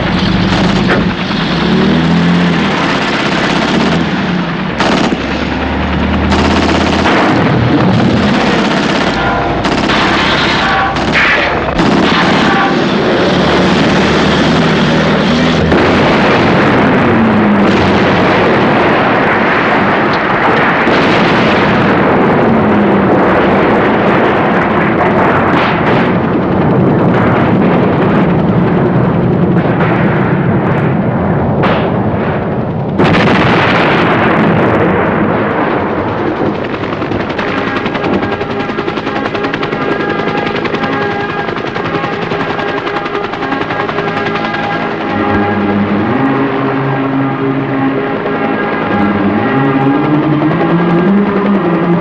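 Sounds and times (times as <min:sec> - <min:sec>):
gunfire and machine-gun bursts: 0:00.0 - 0:30.5, 0:31.6 - 0:51.9
loud dense rumble: 0:00.0 - 0:52.0.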